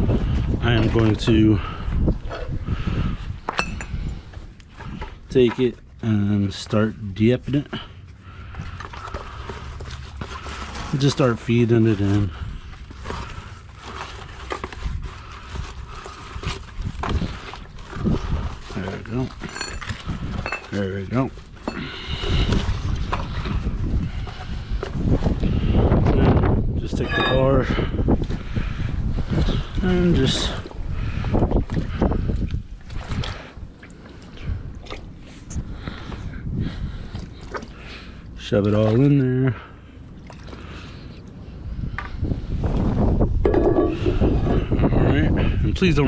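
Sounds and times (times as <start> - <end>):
water sloshing in a bucket: 0.1 - 41.9, 42.6 - 44.8
webbing scraping and rustling: 43.4 - 44.9.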